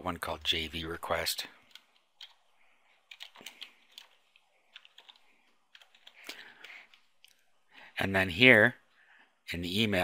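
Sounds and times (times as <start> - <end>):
typing on computer keyboard: 1.6 - 7.3.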